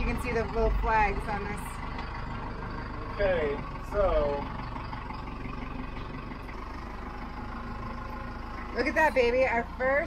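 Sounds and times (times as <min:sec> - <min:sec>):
truck engine running: 0:00.0 - 0:10.0.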